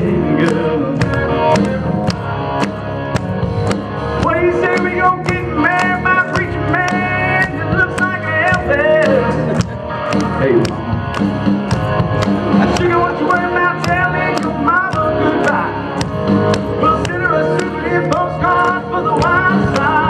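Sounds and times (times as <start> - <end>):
backing music: 0.0 - 20.0
steady drum beat: 0.0 - 20.0
man singing country rock: 4.2 - 9.5, 12.6 - 15.8, 16.8 - 20.0.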